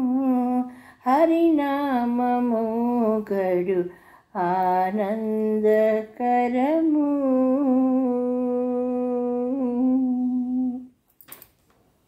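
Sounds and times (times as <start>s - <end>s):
woman singing a long note: 4.4s - 10.9s.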